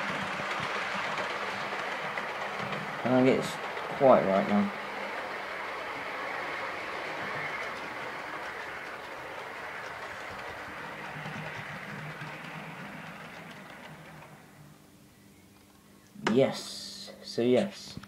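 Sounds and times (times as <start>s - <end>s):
model train running on track: 0.0s - 14.8s.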